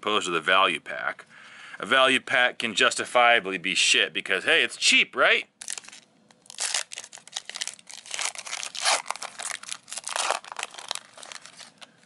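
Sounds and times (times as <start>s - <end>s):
foil wrapper crinkling and tearing: 5.6s - 12.0s.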